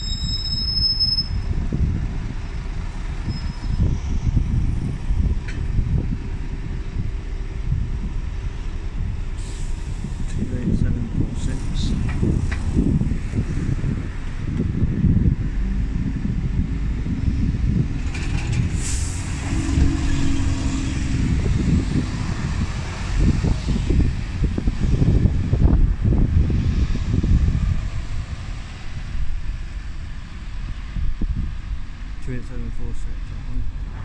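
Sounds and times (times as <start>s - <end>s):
diesel bus engine: 0.0s - 34.0s
air brake hiss: 9.4s - 10.0s, 18.8s - 19.3s.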